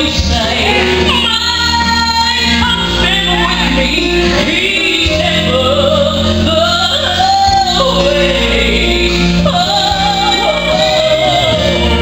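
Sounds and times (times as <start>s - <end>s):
gospel trio singing: 0.0s - 12.0s
musical accompaniment: 0.0s - 12.0s.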